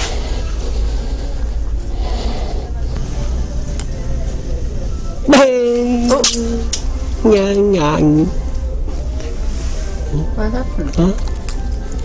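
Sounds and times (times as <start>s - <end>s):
store background hum: 0.0s - 12.0s.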